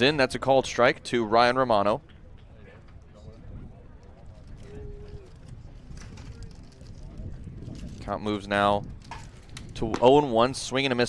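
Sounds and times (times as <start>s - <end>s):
distant crowd voices: 0.0s - 7.6s.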